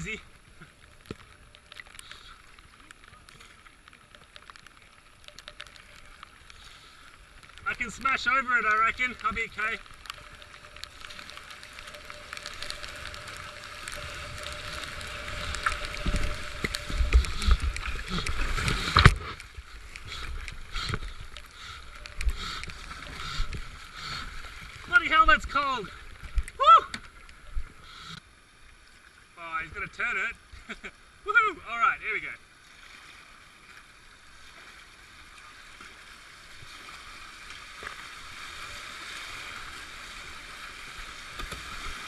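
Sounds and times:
paddle splashes: 0.0 - 28.1
flowing water: 0.0 - 42.0
rushing white water: 4.0 - 27.8, 29.3 - 42.0.

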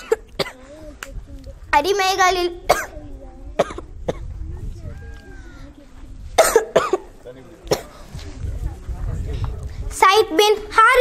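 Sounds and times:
girl coughing: 0.0 - 0.7, 2.7 - 4.4, 6.4 - 7.1.

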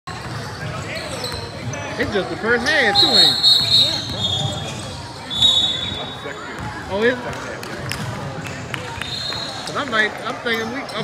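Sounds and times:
sneakers squeaking on hardwood: 0.1 - 2.0, 2.9 - 6.7.

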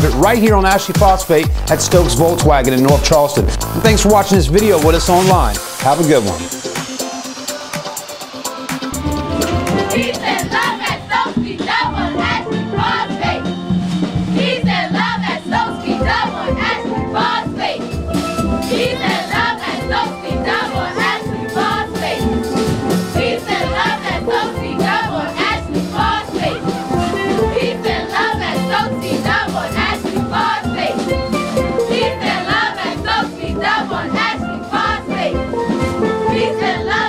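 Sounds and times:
steel drum band playing: 0.0 - 11.4, 17.8 - 34.2
group of voices singing: 0.3 - 37.0
young voices chanting: 9.8 - 13.4, 18.7 - 22.2.

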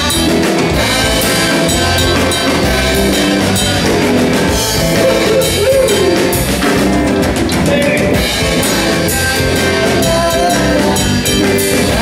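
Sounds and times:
rock band playing instrumental: 0.0 - 12.0.

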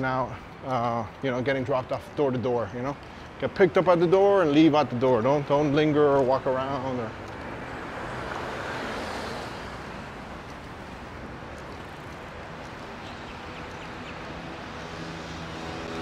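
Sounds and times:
traffic hum: 0.0 - 16.0
car passing: 5.8 - 16.0.

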